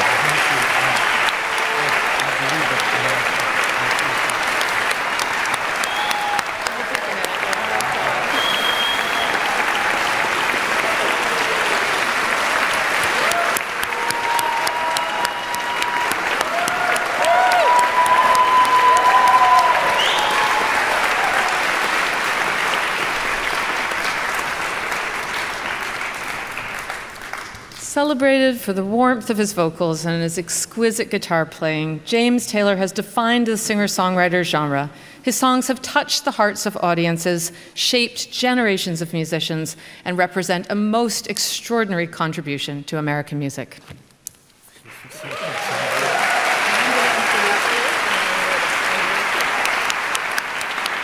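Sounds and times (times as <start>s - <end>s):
audience applauding: 0.0s - 27.7s, 44.9s - 51.0s.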